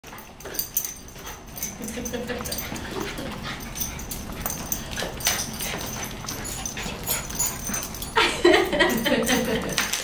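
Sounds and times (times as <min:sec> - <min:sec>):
paws clicking on tile floor: 0:00.0 - 0:10.0.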